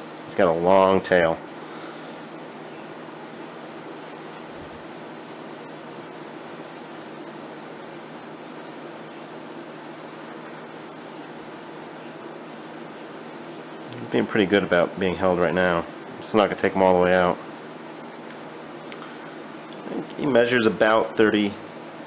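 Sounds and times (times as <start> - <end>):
room noise hiss: 0.0 - 22.0.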